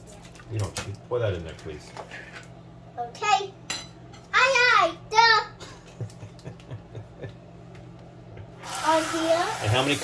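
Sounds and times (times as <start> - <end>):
water running: 8.6 - 10.0.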